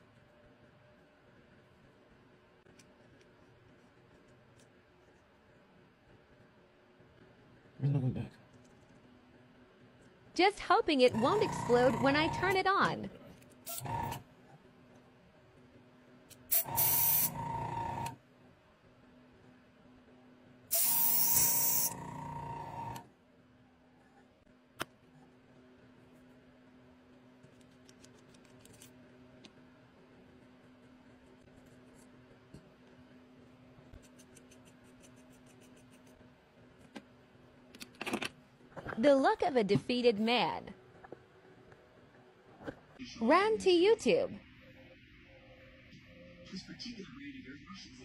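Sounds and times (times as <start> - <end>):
airbrush air hissing: 16.5 - 17.3, 20.7 - 22.0.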